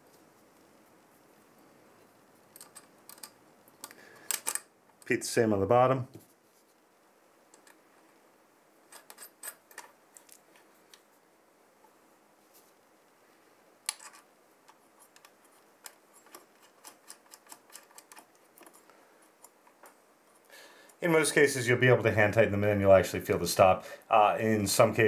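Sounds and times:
mounting caps clicking: 0:02.6 - 0:05.1, 0:08.9 - 0:10.4, 0:13.8 - 0:18.8.

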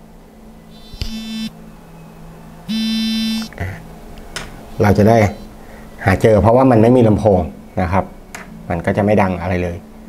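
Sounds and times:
smartwatch vibration buzzing: 0:00.7 - 0:01.6, 0:02.7 - 0:03.5.

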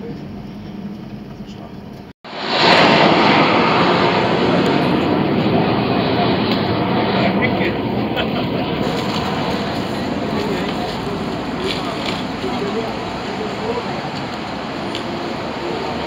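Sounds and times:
jet engines climbing: 0:00.0 - 0:16.0.

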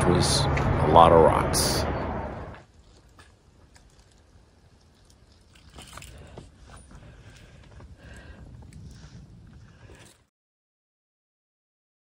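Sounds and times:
faint low outdoor rumble: 0:00.0 - 0:10.1.

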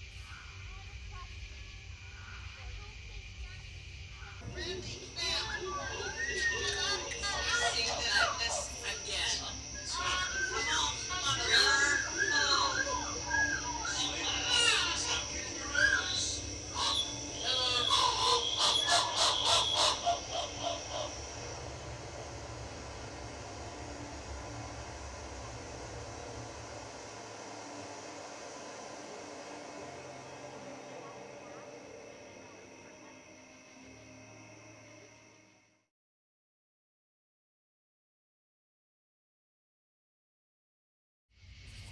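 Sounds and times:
electronic drone: 0:00.0 - 0:35.8
excited voices calling: 0:04.2 - 0:22.2.

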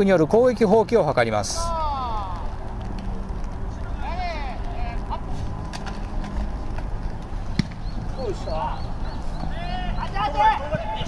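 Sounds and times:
open-air background noise: 0:00.0 - 0:11.0
players shouting: 0:01.5 - 0:02.6, 0:08.0 - 0:11.0.

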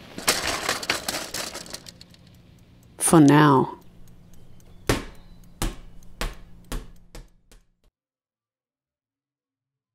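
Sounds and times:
wheel bouncing on asphalt: 0:00.0 - 0:02.4.

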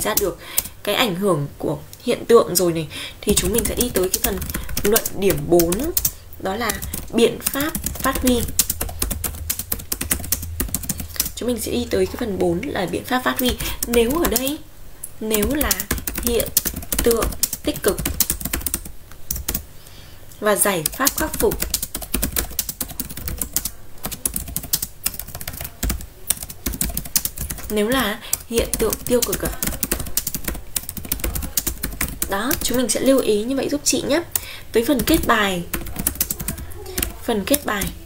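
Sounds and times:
keyboard typing clicks: 0:03.3 - 0:11.4, 0:13.2 - 0:14.6, 0:15.3 - 0:19.6, 0:20.8 - 0:32.8, 0:35.0 - 0:38.0.

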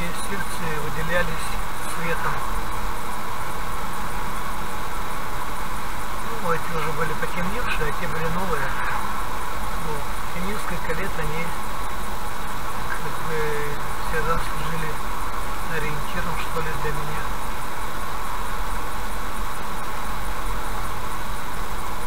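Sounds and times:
man talking: 0:00.0 - 0:02.5, 0:06.2 - 0:09.1, 0:09.8 - 0:11.6, 0:12.8 - 0:15.0, 0:15.7 - 0:17.3
car road and engine noise: 0:00.0 - 0:22.0.

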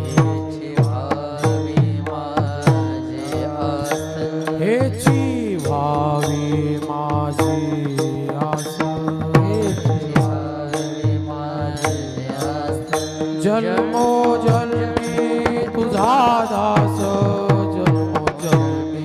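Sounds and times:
hand cymbals struck: 0:00.0 - 0:19.0
man chanting: 0:00.0 - 0:19.0.

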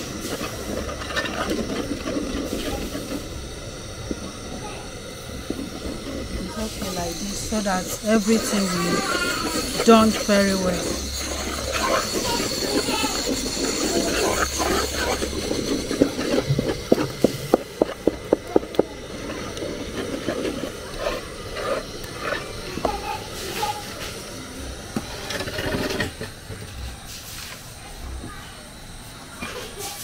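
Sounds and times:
stick stirring thick dough: 0:00.0 - 0:26.3
stick knocking against pot: 0:10.4 - 0:23.0.

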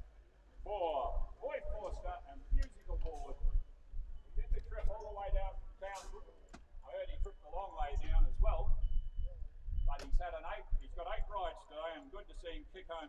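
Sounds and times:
people talking indistinctly: 0:00.7 - 0:13.0.

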